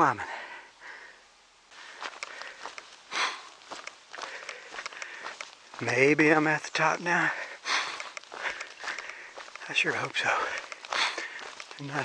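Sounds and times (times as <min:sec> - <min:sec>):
person breathing: 0:00.2 - 0:05.5, 0:07.2 - 0:09.6, 0:10.3 - 0:11.8
footsteps crunching on dirt trail: 0:01.7 - 0:12.0.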